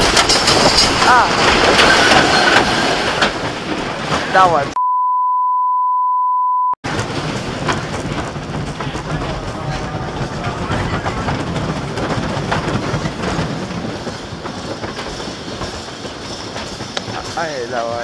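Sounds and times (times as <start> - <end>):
roller coaster wheels rumbling and clacking: 0.0 - 4.8, 6.8 - 18.0
steady high beep: 4.8 - 6.8.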